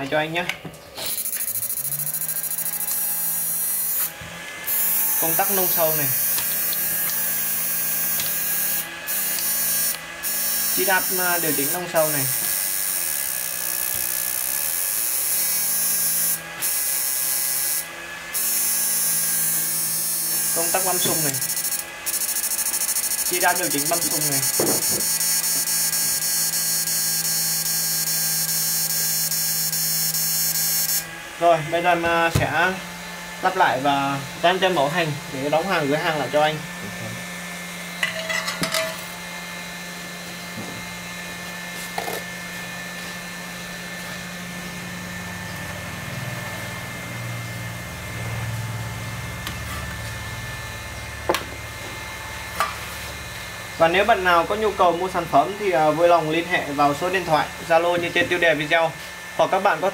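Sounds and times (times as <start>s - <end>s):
inverter high hissing buzz: 0.0s - 59.9s
high-pitched electronic whine: 1.0s - 4.1s, 18.4s - 32.3s.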